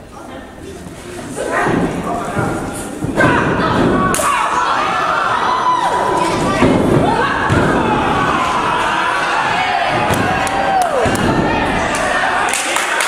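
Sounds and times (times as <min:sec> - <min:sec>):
crowd shouting and yelling: 0:03.0 - 0:13.0.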